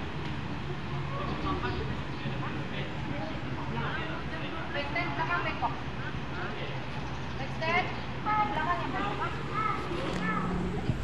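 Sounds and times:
background chatter: 0:00.0 - 0:11.0
steady low hum: 0:08.0 - 0:11.0.

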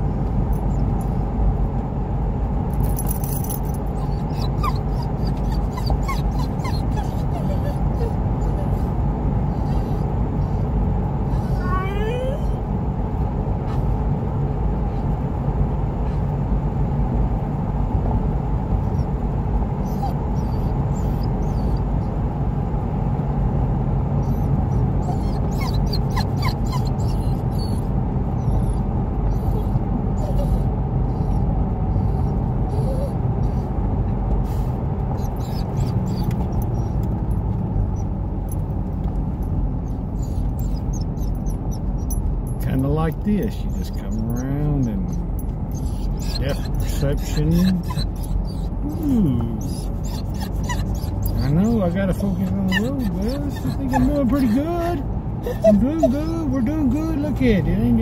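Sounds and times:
car engine and road noise: 0:00.0 - 0:58.0
dog whining: 0:03.1 - 0:12.7, 0:19.8 - 0:22.0, 0:24.2 - 0:33.7, 0:34.5 - 0:37.0, 0:39.8 - 0:42.3, 0:43.7 - 0:57.1.

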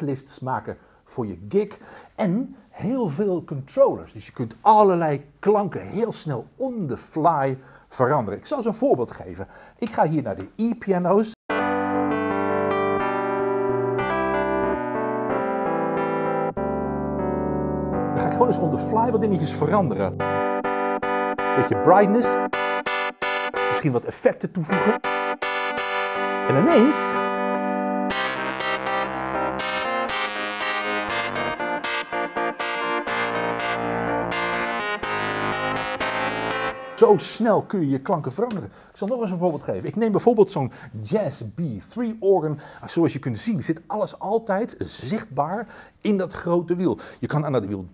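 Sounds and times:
electric piano chords: 0:11.5 - 0:24.0, 0:24.6 - 0:37.7.

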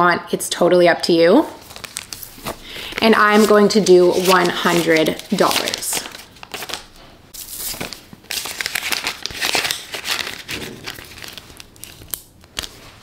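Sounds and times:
banknotes crinkling: 0:01.6 - 0:13.0.

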